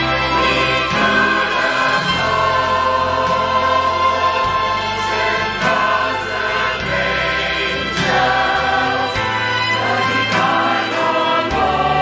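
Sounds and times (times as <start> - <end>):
choir singing: 0.0 - 12.0
instrumental accompaniment: 0.0 - 12.0.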